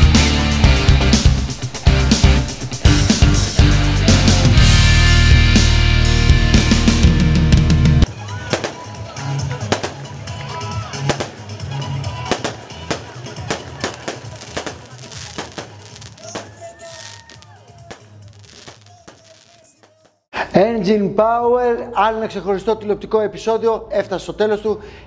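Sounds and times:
background music with bass line: 0.0s - 8.2s
faint voices: 8.1s - 20.0s
sharp bangs: 8.5s - 10.1s, 11.0s - 11.6s, 12.3s - 20.0s.

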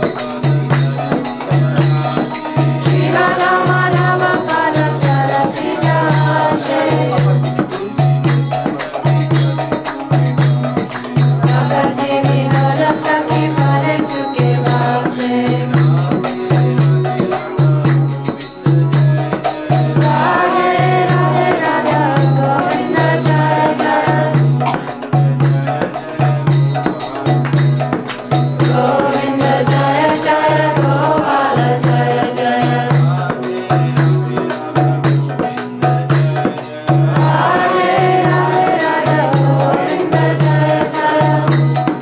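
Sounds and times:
hand drum beating: 0.0s - 42.0s
rhythmic percussion: 0.0s - 42.0s
voices singing a chant: 0.0s - 42.0s.

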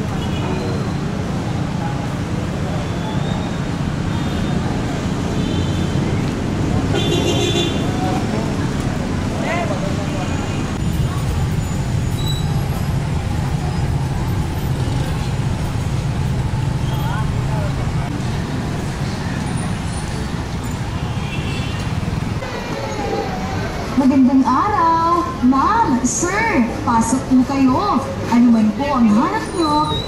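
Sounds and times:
cars and motorcycles passing: 0.0s - 30.0s
faint voices of passers-by: 0.0s - 30.0s.

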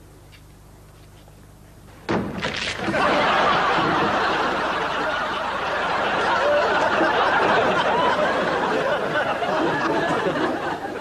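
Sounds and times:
studio audience laughing: 2.8s - 11.0s.

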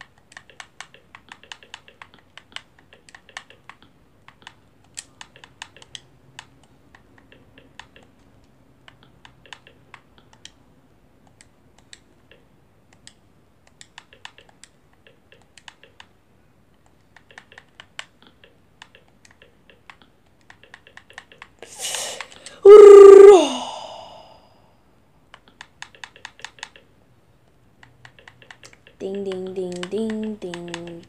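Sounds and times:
breathy rush: 21.6s - 24.6s
short held vocal sound: 21.6s - 24.6s.

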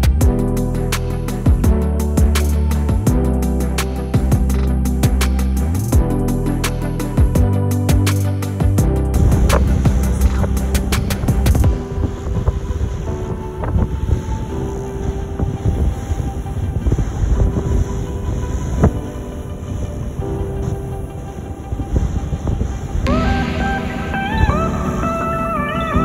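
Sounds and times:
music: 0.0s - 26.0s.

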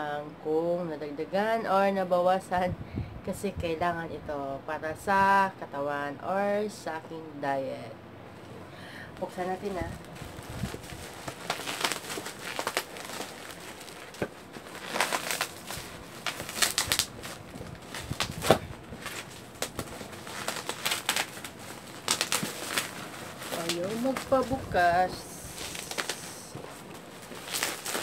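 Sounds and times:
packaging crinkling and tearing: 9.6s - 28.0s.

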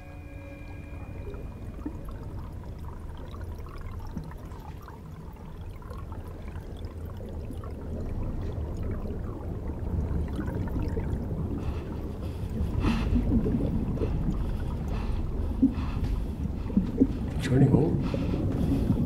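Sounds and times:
low rumble: 0.0s - 6.2s, 6.8s - 19.0s
aquarium water bubbling: 0.0s - 19.0s.

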